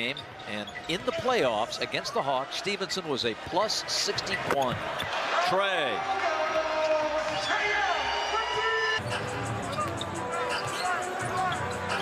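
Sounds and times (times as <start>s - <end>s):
arena crowd noise: 0.0s - 12.0s
fans yelling: 5.2s - 12.0s
arena music: 8.7s - 12.0s.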